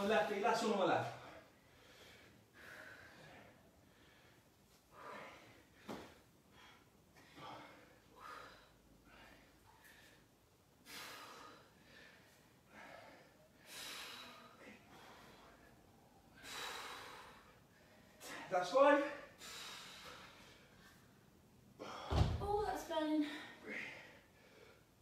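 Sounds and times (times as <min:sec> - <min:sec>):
low thud: 0:22.1 - 0:22.7.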